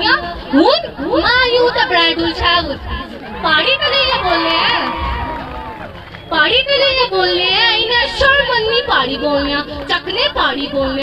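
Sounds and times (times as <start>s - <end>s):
girl speaking into microphone: 0.0s - 4.5s
crowd voices: 0.0s - 11.0s.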